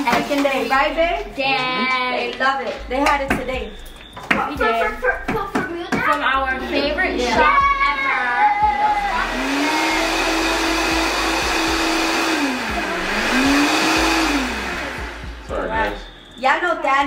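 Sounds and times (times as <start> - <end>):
blender motor running: 8.8 - 15.5.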